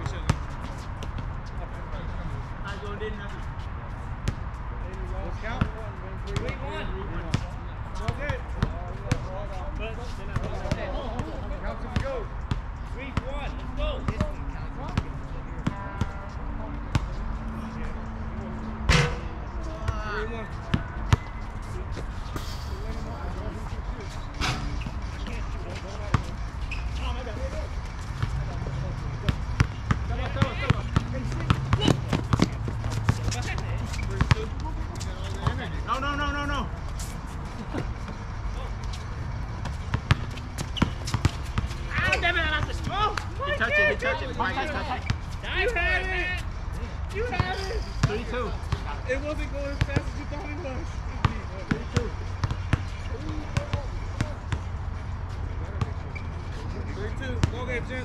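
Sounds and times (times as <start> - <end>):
basketball bouncing on hard court: 29.2 - 34.5, 39.6 - 43.0.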